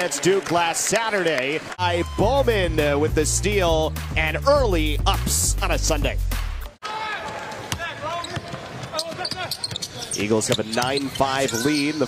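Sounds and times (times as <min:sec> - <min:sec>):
voices in arena: 0:00.0 - 0:03.0, 0:06.8 - 0:12.0
music: 0:01.8 - 0:06.8.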